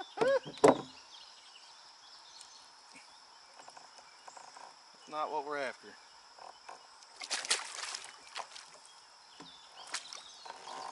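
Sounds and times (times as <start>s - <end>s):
paddle knocks: 0.2s - 1.0s
kayak paddle splashing: 7.1s - 10.9s.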